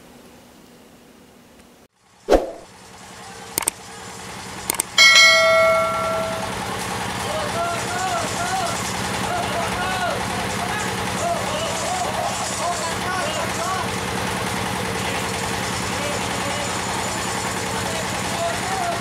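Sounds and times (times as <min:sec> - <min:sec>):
small engine humming: 0:02.7 - 0:19.0
bell-like metallic ring: 0:05.0 - 0:07.0
people's voices: 0:05.0 - 0:14.0, 0:14.8 - 0:19.0.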